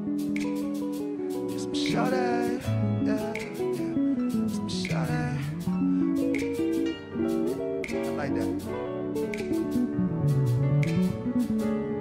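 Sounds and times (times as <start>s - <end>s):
live band music with guitar: 0.0s - 12.0s.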